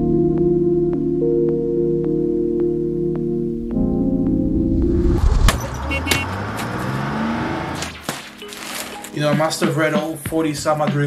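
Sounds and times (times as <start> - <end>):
vehicle engine running: 4.8 - 8.0
outdoor street noise: 4.8 - 9.1.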